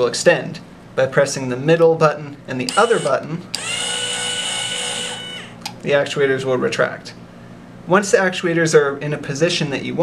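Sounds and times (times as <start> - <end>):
electric motors whining: 2.7 - 5.7.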